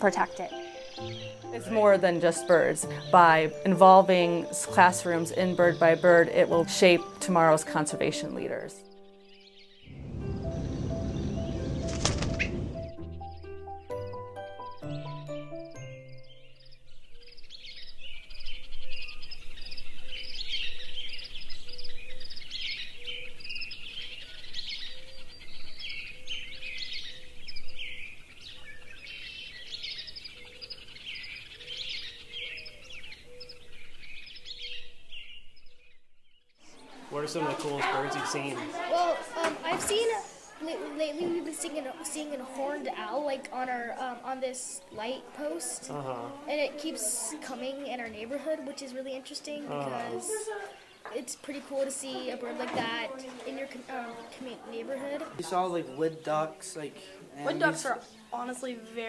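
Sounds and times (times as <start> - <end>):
music swell and notes: 0.0 - 17.0
birds chirping and trilling: 0.0 - 59.0.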